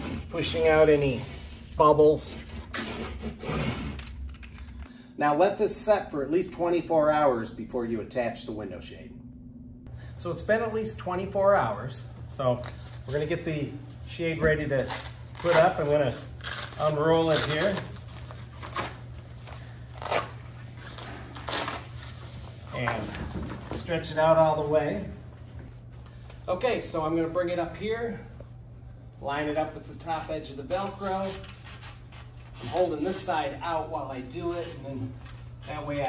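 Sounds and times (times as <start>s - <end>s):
roller rubbing on velcro strip: 14.7s - 19.1s.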